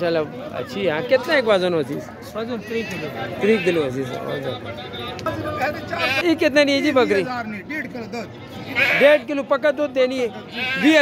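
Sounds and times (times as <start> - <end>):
men talking: 0.0 - 11.0
goat bleating: 2.6 - 4.0, 5.9 - 6.3, 8.6 - 9.2, 10.4 - 11.0.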